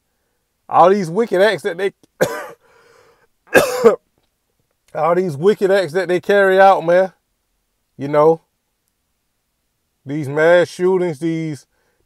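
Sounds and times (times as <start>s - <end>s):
man coughing: 2.2s - 2.7s, 3.5s - 4.0s.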